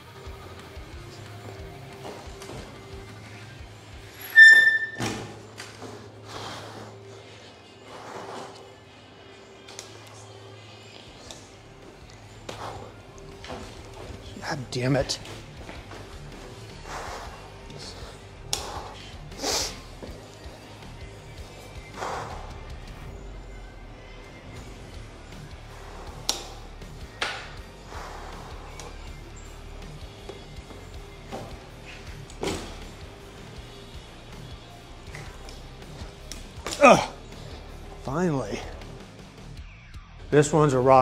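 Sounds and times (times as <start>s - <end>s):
background music: 0.0s - 41.0s
bike thumps and scuffs on tiles: 1.9s - 3.1s, 4.9s - 6.2s, 12.4s - 14.2s, 26.2s - 28.9s, 30.2s - 33.1s.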